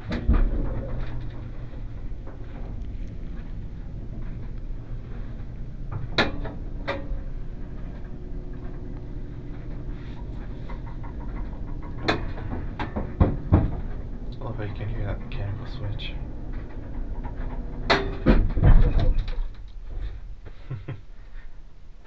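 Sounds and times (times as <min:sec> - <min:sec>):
elevator clanking: 0:00.0 - 0:20.2
elevator clunks: 0:00.0 - 0:20.2
elevator motor hum: 0:00.0 - 0:21.2.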